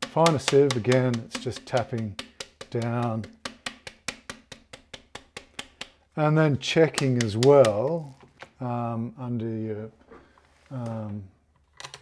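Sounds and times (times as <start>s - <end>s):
hand tapping brass sieve: 0.0s - 8.4s.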